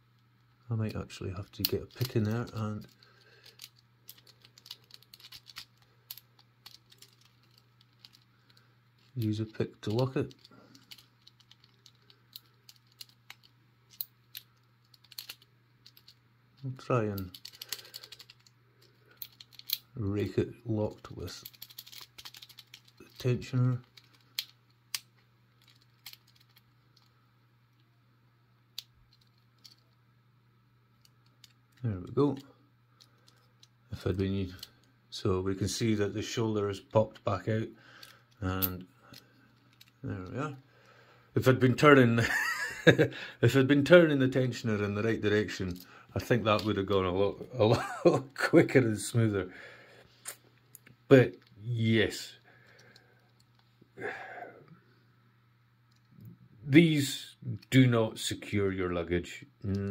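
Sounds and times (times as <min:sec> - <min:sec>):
lock pick clicks and scratches: 0:01.6 - 0:08.2, 0:19.1 - 0:19.8, 0:21.4 - 0:23.2.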